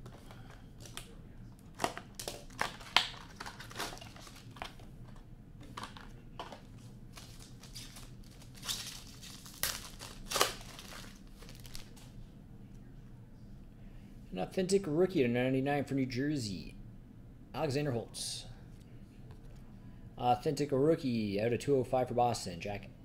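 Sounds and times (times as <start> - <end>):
plastic wrapping tearing and crinkling: 1.7 - 4.8, 7.1 - 12.1.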